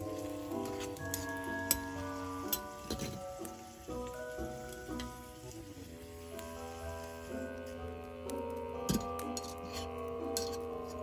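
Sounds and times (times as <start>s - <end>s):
gentle background music: 0.0s - 11.0s
onions sizzling in a pan: 0.0s - 11.0s.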